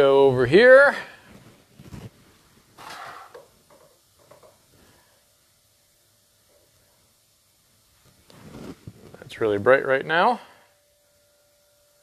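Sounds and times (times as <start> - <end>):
soft handling noises: 1.2 - 5.0, 8.0 - 9.5.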